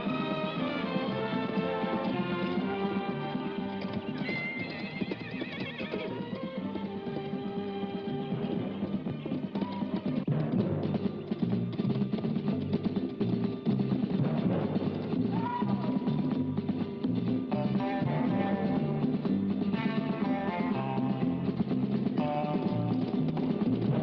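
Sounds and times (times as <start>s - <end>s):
horse whinnying: 0.0s - 10.2s
galloping horse hoofbeats: 0.0s - 24.0s
western film score music: 0.0s - 24.0s.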